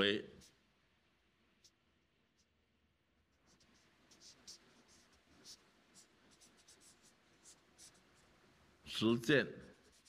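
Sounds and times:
faint marker scratching on paper: 0.0s - 0.8s, 1.4s - 8.8s, 9.6s - 10.0s.

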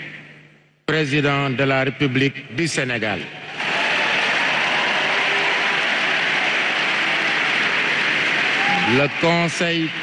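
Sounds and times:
audience applauding: 3.6s - 10.0s.

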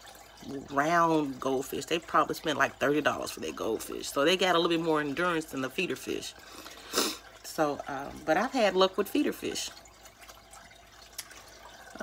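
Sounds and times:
trickle of water: 0.0s - 12.0s.

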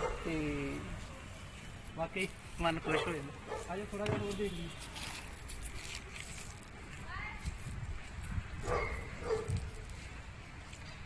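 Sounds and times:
dog barking: 0.0s - 0.3s, 2.8s - 3.8s, 8.6s - 9.6s.

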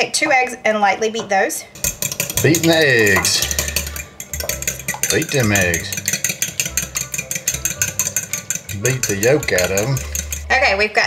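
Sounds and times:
fork beating eggs in glass bowl: 1.8s - 10.8s.

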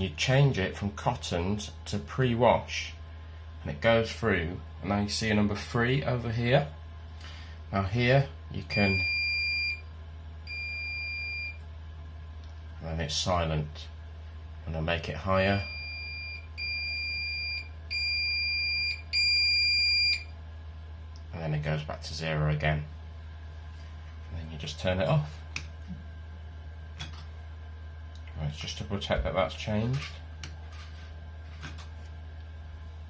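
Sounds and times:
steady low hum: 0.0s - 33.0s
washing machine high-pitched buzzer: 8.7s - 9.9s, 10.5s - 11.6s, 15.5s - 20.3s.

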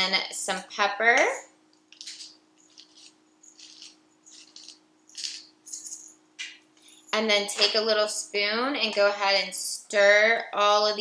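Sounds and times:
pepper mill grinding: 1.9s - 6.2s.

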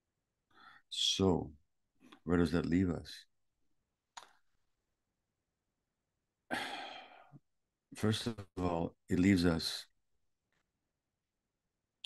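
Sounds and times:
man sighing: 6.5s - 7.4s.

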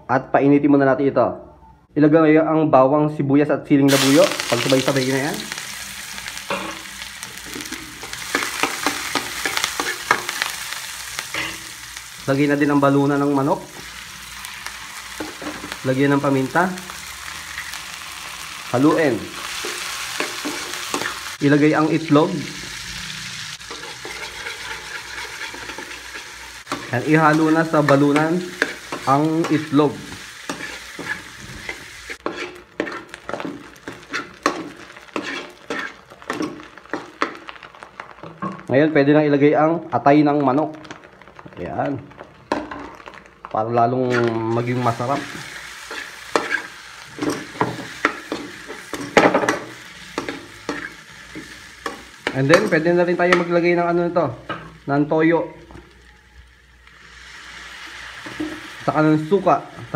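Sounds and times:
vegetables sizzling in oil: 3.9s - 59.9s
utensil clinking and scraping pan: 23.7s - 29.7s, 30.5s - 37.4s, 44.0s - 52.8s.

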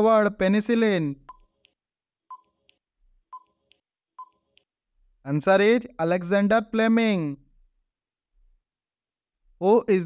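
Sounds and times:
electronic beeping ticks: 1.3s - 4.7s.

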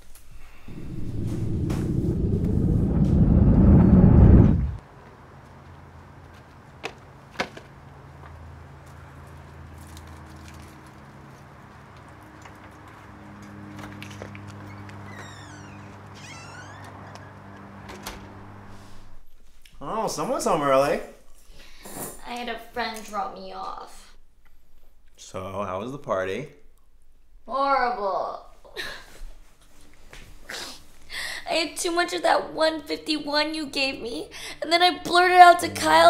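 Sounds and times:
steady low hum: 0.2s - 4.8s, 35.1s - 36.0s
car engine rumbling: 0.4s - 4.8s
door hinges squealing: 14.6s - 18.4s.

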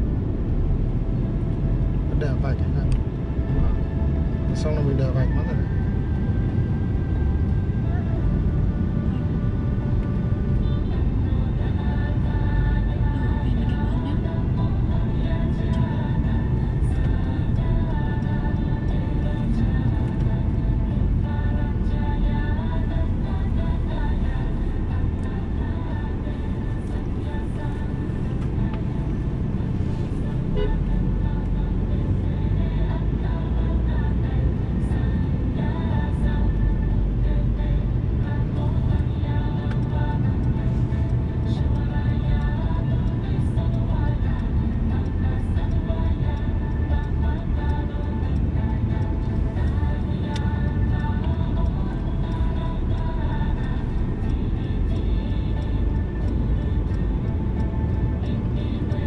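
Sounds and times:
car engine rumble inside cabin: 0.0s - 59.0s
music playing: 0.0s - 59.0s.

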